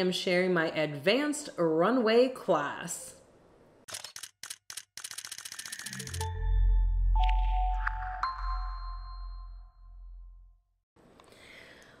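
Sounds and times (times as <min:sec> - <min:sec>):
camera shutter clicks: 0:03.9 - 0:06.3.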